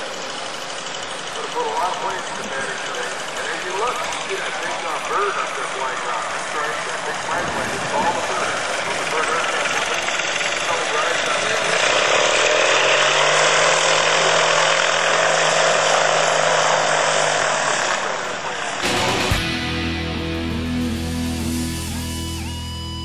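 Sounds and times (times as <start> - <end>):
light aircraft engine droning: 0.0 - 18.8.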